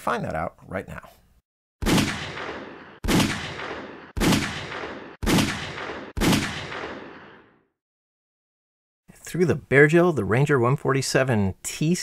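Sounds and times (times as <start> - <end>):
pistol shots with echo: 1.8 - 7.5.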